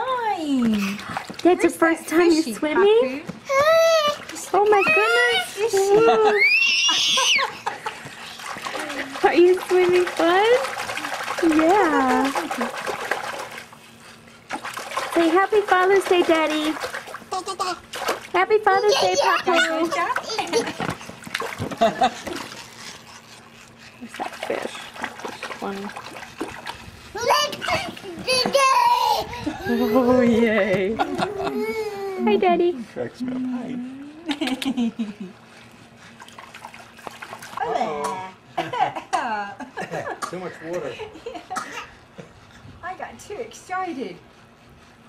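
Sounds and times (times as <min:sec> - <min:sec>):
water splashing and trickling: 0:03.6 - 0:29.0, 0:36.0 - 0:38.0
baby squealing: 0:06.3 - 0:07.5.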